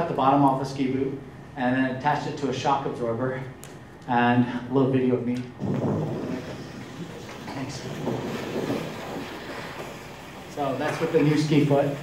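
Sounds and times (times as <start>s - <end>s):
wind buffeting a microphone: 5.6s - 10.4s.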